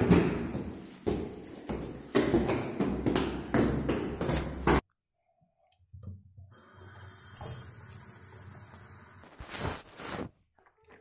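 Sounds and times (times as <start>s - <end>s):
tap water running into sink: 6.6s - 9.2s.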